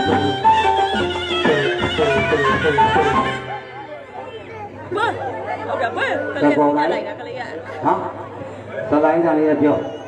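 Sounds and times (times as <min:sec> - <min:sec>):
people talking in a crowd: 0:00.0 - 0:10.0.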